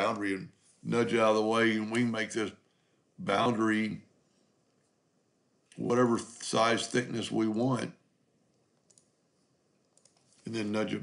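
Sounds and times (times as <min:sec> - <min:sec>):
computer mouse clicks: 0:08.5 - 0:09.2, 0:09.8 - 0:10.4.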